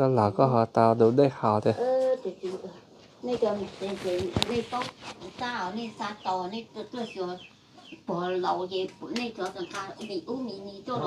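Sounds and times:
chickens clucking: 0:01.0 - 0:11.0.

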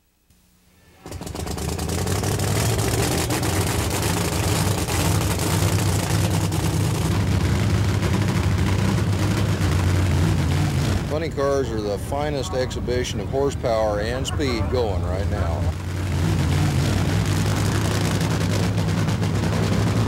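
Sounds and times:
drag racing engine running loud: 0:01.0 - 0:20.0.

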